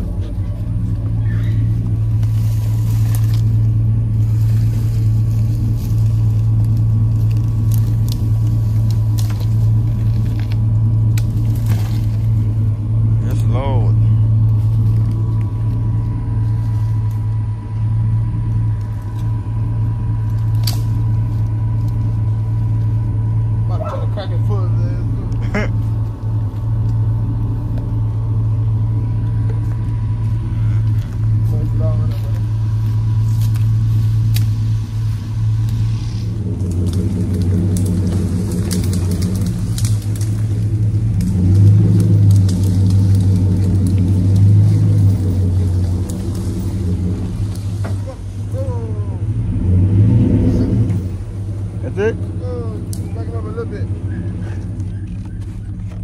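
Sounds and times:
truck engine running: 0.0 - 56.0.

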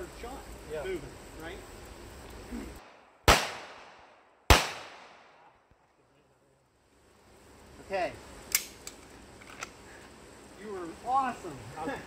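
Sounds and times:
pistol shot with echo: 2.9 - 5.4.

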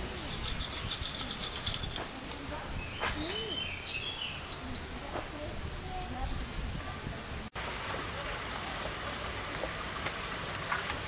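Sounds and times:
hissing outdoor background noise: 0.0 - 11.0.

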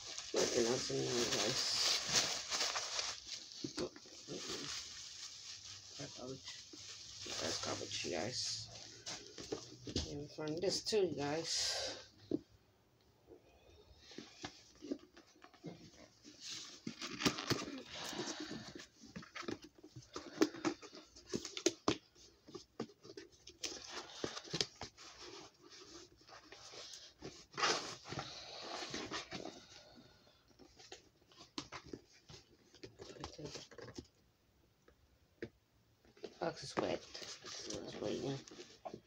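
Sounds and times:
cardboard box rustling: 0.0 - 10.3.

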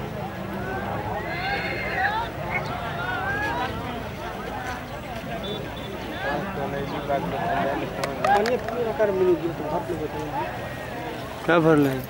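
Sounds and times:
crowd chatter and shouts: 0.0 - 12.0
horse whinnying: 1.2 - 2.2.

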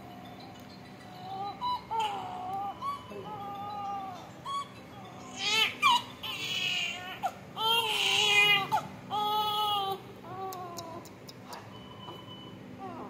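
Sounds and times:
newborn baby crying: 1.1 - 11.0, 12.8 - 13.0.

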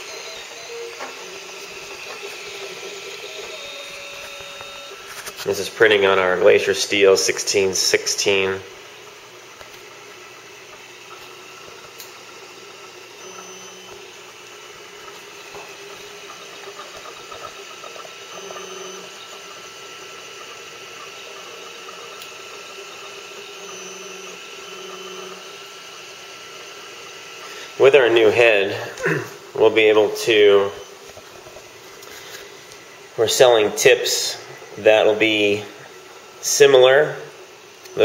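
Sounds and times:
faint constant whine: 0.0 - 38.0
pitched motor tones: 0.0 - 38.0
printer mechanical hum and hiss: 0.0 - 38.0.

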